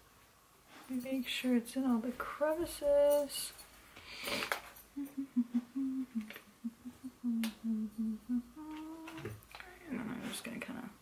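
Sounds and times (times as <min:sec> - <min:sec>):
woman humming a tune: 0:05.0 - 0:09.4.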